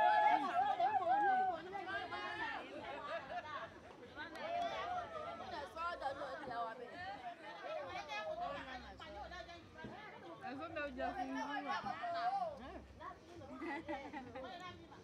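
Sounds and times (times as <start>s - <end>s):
women chattering: 0.0s - 15.0s.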